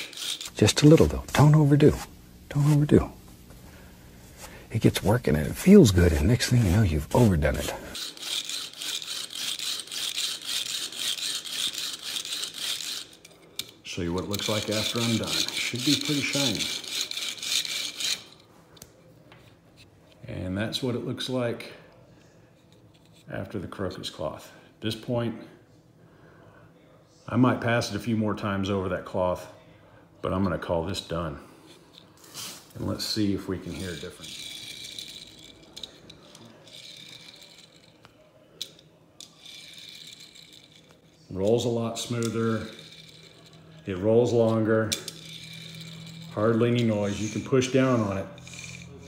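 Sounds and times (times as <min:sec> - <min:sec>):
toy car rolling on countertop: 0:00.0 - 0:01.2, 0:06.4 - 0:18.4, 0:33.0 - 0:49.0.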